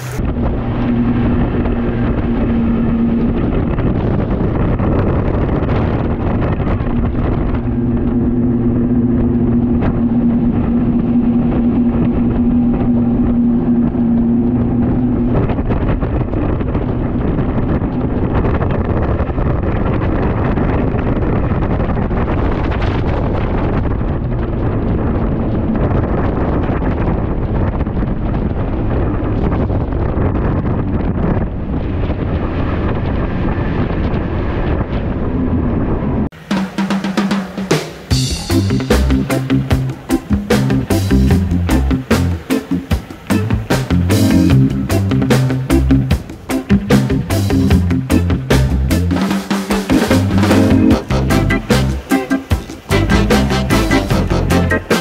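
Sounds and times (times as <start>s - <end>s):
rushing water: 0.0s - 19.4s, 36.4s - 55.0s
outboard motors humming: 0.0s - 35.6s, 36.3s - 55.0s
wind rushing: 0.0s - 55.0s.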